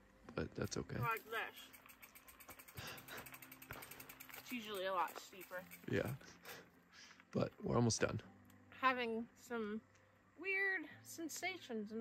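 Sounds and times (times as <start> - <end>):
bike hub ticking rapidly: 1.0 - 6.3.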